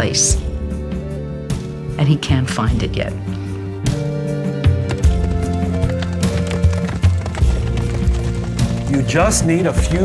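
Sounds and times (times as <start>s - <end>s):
background music held notes: 0.0s - 10.0s
galloping horse hoofbeats: 4.6s - 10.0s.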